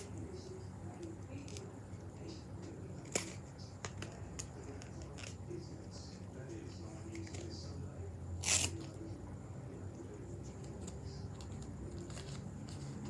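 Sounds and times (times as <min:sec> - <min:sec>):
low steady hum: 0:00.0 - 0:13.0
card being torn: 0:08.4 - 0:09.0.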